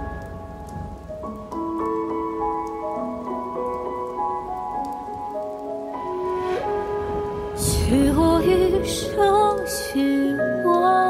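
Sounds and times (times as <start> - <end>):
rain pattering: 0.0 - 11.0
slow instrumental melody: 0.0 - 11.0.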